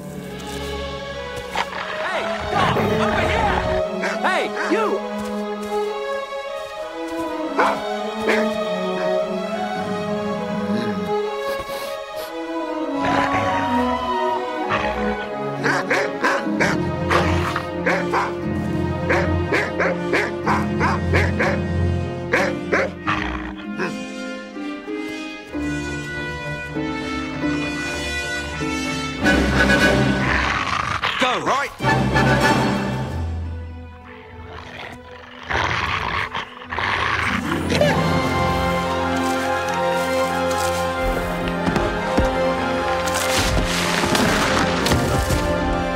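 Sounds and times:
background music: 0.0s - 45.9s
dog barking: 7.5s - 9.2s, 15.6s - 17.2s, 17.8s - 18.4s, 19.1s - 21.6s, 22.3s - 23.0s
large dog growling: 34.4s - 37.9s.

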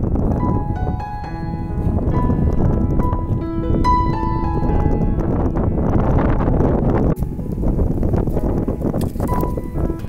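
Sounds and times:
wind blowing on microphone: 0.0s - 10.0s.

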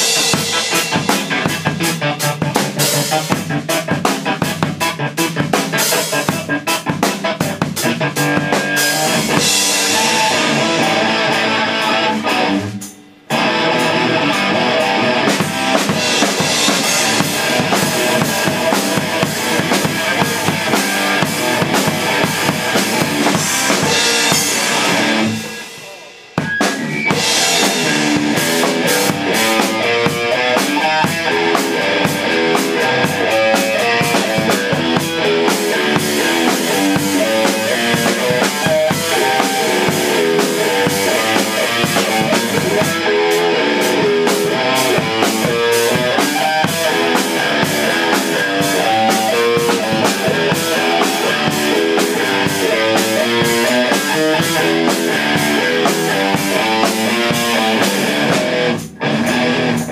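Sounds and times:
electric guitar: 0.0s - 59.9s
rock drum kit: 0.0s - 59.9s.

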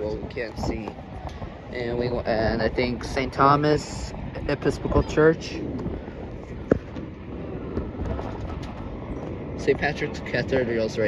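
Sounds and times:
distant city traffic hum: 0.0s - 11.0s
wind on microphone: 0.0s - 11.0s.

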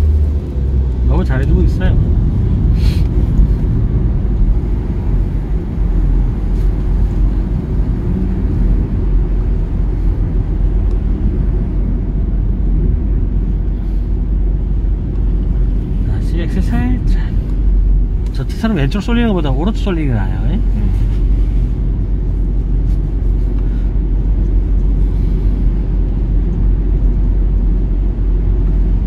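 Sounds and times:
car interior road rumble: 0.0s - 29.0s.

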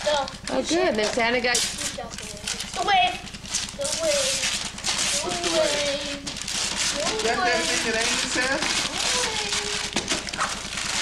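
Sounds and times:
wrapping paper tearing and crumpling: 1.6s - 11.0s.

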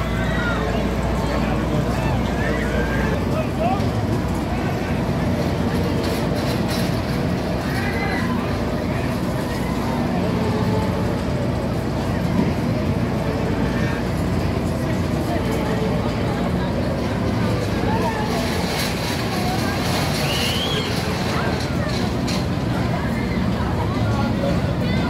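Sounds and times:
crowd chatter and calls: 0.0s - 25.0s
low machine hum: 0.0s - 25.0s.

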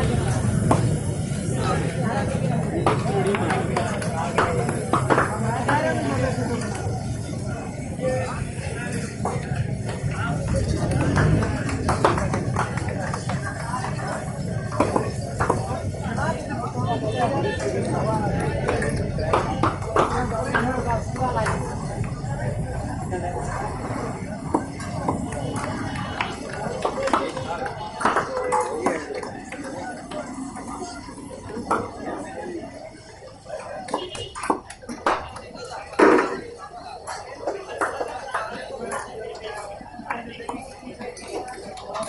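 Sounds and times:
voices chattering: 0.0s - 42.0s.

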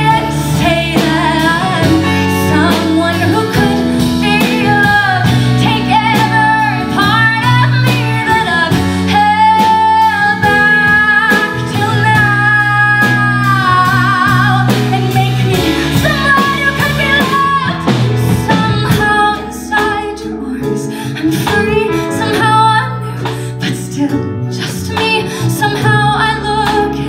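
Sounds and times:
band playing: 0.0s - 27.0s
woman singing: 0.0s - 27.0s.

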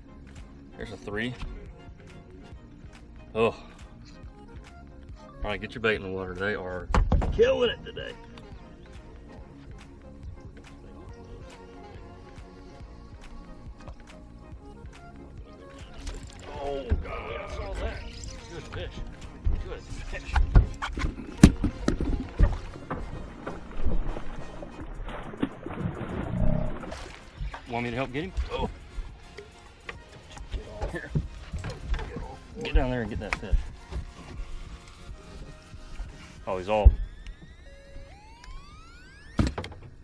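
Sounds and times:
knocks and thumps on boat deck: 6.9s - 7.5s, 19.4s - 23.8s
mechanical whine rising in pitch: 37.0s - 39.6s.

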